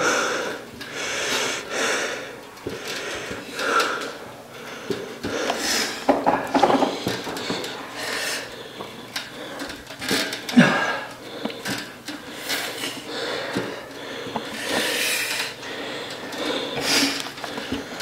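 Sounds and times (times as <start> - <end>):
exercise machine rasping: 0.0 - 18.0.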